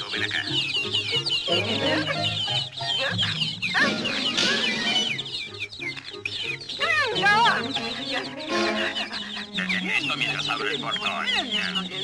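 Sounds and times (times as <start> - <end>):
baby chicks peeping: 0.0 - 12.0
cartoon music: 0.0 - 12.0.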